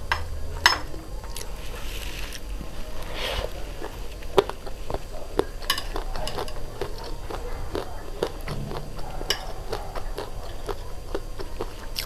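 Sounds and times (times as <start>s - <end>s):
soft chewing: 0.1s - 12.0s
chopsticks clinking on a plate: 5.4s - 8.3s.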